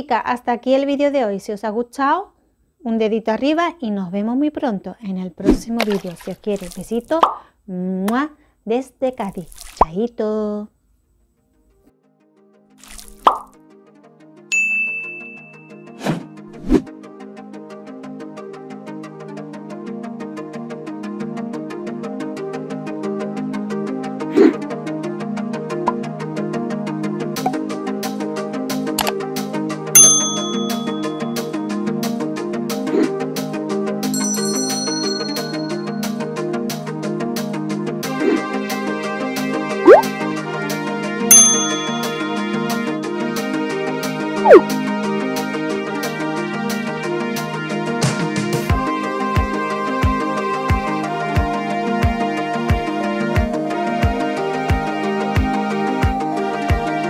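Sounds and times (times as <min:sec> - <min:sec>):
light plucky background music: 0:05.4 - 0:07.4, 0:24.3 - 0:24.7, 0:25.8 - 0:26.1, 0:27.3 - 0:27.8, 0:28.8 - 0:31.7, 0:34.1 - 0:36.3, 0:38.1 - 0:40.4, 0:41.3 - 0:43.7, 0:44.4 - 0:45.0
background music with steady beat: 0:13.6 - 0:57.0
high bell-like ding: 0:14.5 - 0:15.9, 0:30.0 - 0:31.4, 0:34.2 - 0:36.1, 0:41.3 - 0:42.4
whoosh ending in pop: 0:39.8 - 0:40.1.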